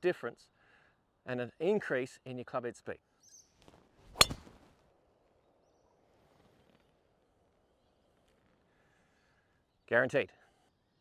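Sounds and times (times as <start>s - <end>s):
golf club striking ball: 4.1s - 4.6s.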